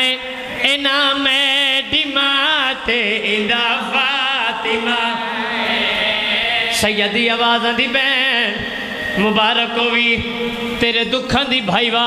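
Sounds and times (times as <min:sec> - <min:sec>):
men chanting through microphones: 0:00.0 - 0:12.0.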